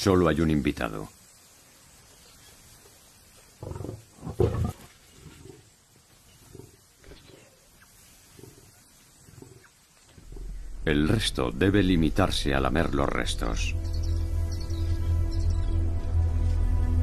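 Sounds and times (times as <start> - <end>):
lions snarling and growling: 3.6 - 11.2.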